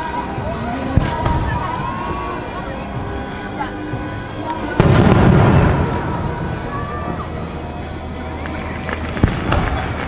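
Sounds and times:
fireworks bangs: 4.8s - 7.2s, 8.4s - 10.0s.

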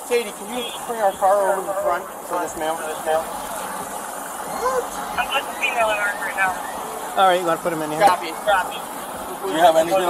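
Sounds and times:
man speaking: 0.0s - 3.4s, 4.4s - 5.2s, 7.0s - 10.0s
outdoor background noise: 0.0s - 10.0s.

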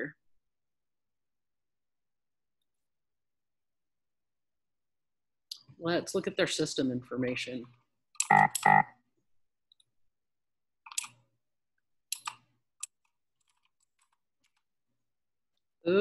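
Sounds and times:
computer keyboard keystrokes: 10.9s - 11.2s, 12.1s - 14.6s.

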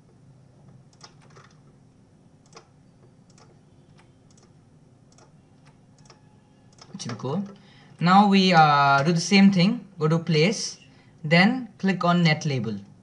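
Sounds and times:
computer mouse and keys clicking: 0.0s - 1.8s, 2.4s - 7.7s
low steady hum: 0.0s - 13.0s.

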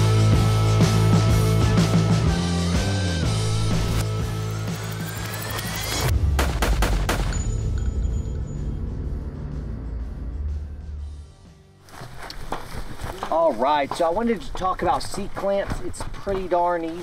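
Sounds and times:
music with rising sweep: 0.0s - 12.0s
low drone: 3.0s - 11.8s
burst of sharp hits: 6.1s - 7.6s.

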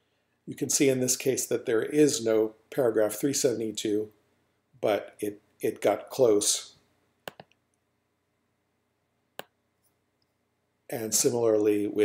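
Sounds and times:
computer mouse button clicks: 7.3s - 7.5s.

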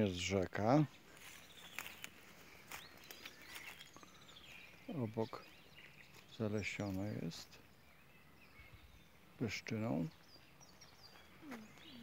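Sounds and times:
soft bird chirps: 0.0s - 12.0s.

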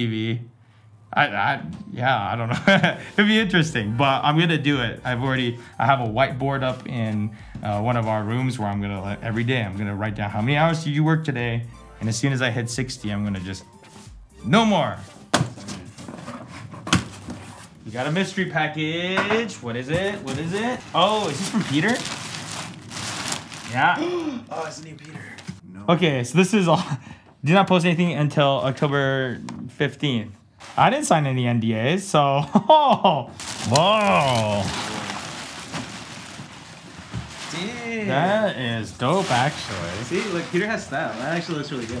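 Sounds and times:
plastic wrapping crinkling: 20.2s - 25.6s, 33.4s - 42.0s.

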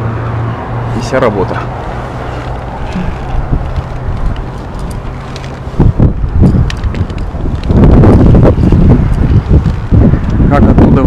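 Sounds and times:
wind buffeting microphone: 0.8s - 11.0s.

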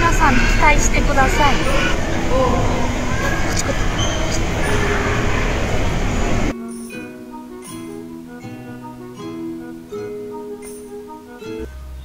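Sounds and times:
faint voices: 0.0s - 6.5s
loud rumbling mall noise: 0.0s - 6.6s.

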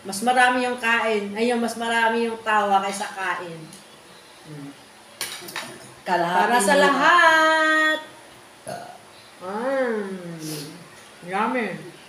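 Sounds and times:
person humming softly: 9.4s - 10.8s.

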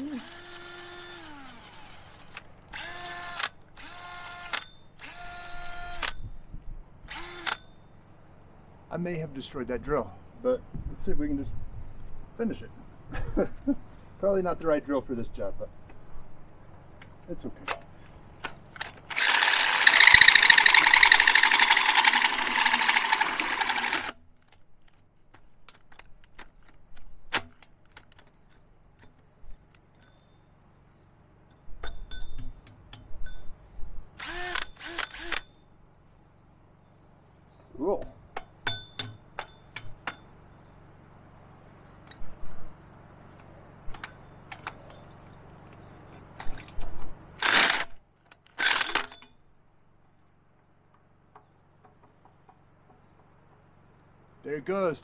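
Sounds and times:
drill hole saw grinding metal: 0.0s - 6.1s, 19.1s - 24.1s, 34.2s - 35.4s.

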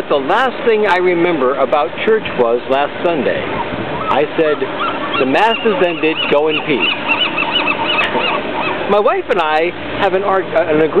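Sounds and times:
bird calling short notes: 3.5s - 9.0s.

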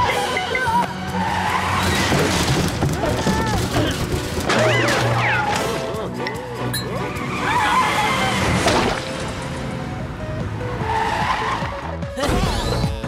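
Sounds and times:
background music: 0.0s - 13.0s
tyres skidding: 0.0s - 13.0s
cartoon car driving: 6.9s - 13.0s.

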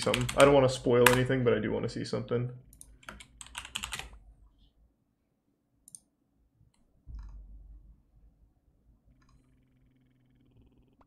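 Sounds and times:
typing on computer keyboard: 0.0s - 1.3s, 2.7s - 4.2s.

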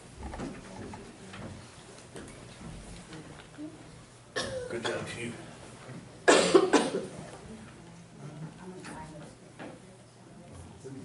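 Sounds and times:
person coughing: 4.4s - 5.1s, 6.2s - 7.1s.

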